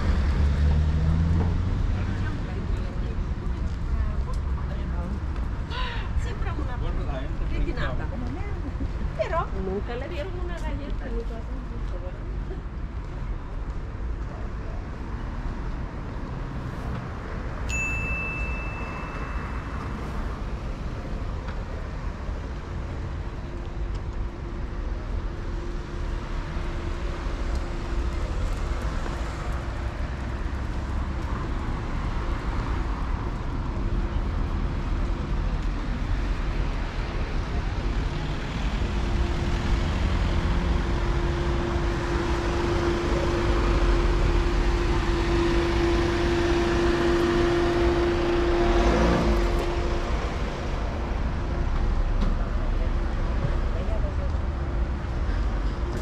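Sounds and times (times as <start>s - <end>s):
vehicle passing: 0.0s - 5.2s, 34.5s - 55.5s
cars driving by: 0.0s - 56.0s
steady engine hum: 18.2s - 56.0s.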